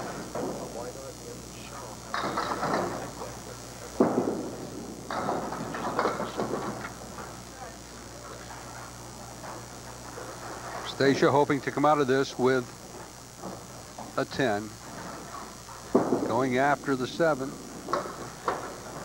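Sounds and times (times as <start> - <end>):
crowd murmur: 0.2 - 10.8.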